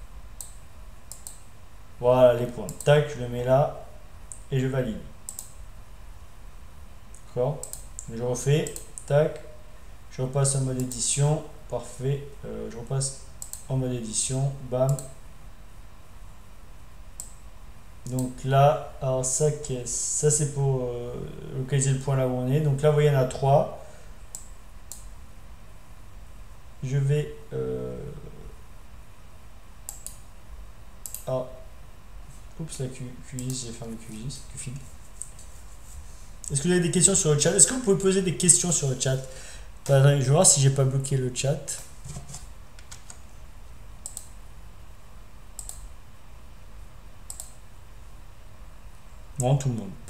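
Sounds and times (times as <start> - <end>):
faint low hum: 0.0 - 50.0
computer mouse clicks: 0.4 - 1.4, 5.3 - 5.6, 7.1 - 9.1, 13.4 - 13.7, 14.9 - 15.2, 17.2 - 17.4, 18.0 - 18.3, 24.3 - 25.1, 29.9 - 30.3, 31.0 - 31.3, 33.4 - 33.6, 35.2 - 35.5, 41.7 - 43.2, 44.0 - 44.4, 45.6 - 45.9, 47.3 - 47.6.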